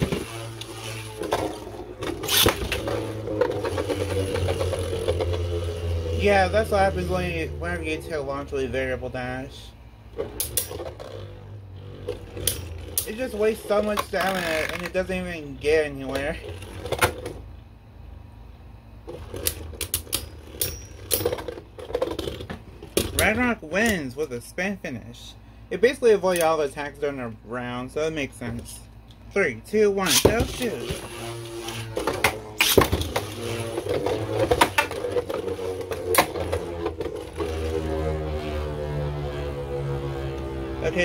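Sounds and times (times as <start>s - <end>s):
spinning tops whirring: 0.0s - 9.6s, 10.2s - 17.3s, 30.0s - 41.0s.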